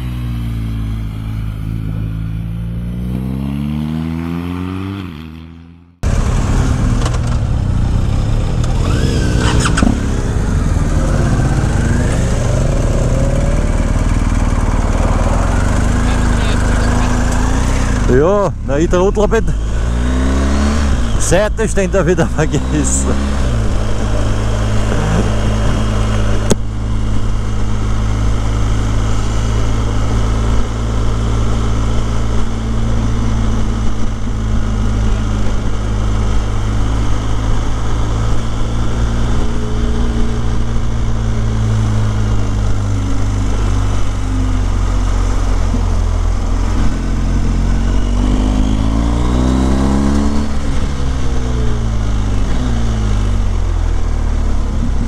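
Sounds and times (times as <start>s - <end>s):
motorcycle engine cruising: 0.0s - 55.0s
wind and road noise: 0.0s - 55.0s.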